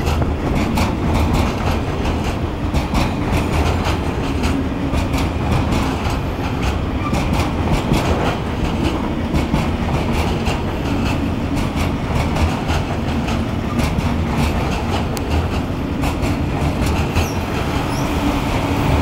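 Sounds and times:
freight train rumbling: 0:00.0 - 0:19.0
wheels clacking over rail joints: 0:00.0 - 0:19.0.

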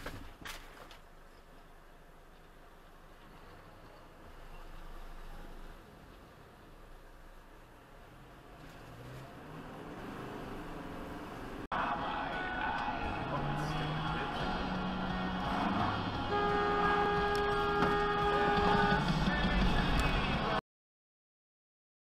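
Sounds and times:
road and engine noise: 0:00.0 - 0:20.6
car horn honking: 0:15.6 - 0:19.1.

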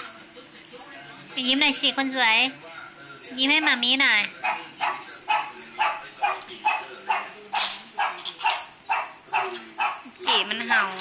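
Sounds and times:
dog barking: 0:04.4 - 0:07.4, 0:08.0 - 0:10.1.

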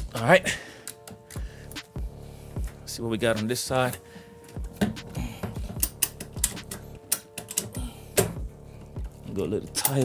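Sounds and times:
faint background music: 0:00.0 - 0:10.0
ratchet strap clicking: 0:05.7 - 0:08.3.

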